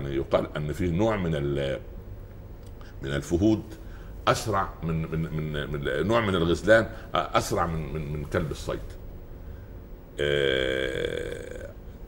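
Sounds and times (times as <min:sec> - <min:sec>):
man's drawn-out hesitation sound: 0:10.2 - 0:11.8.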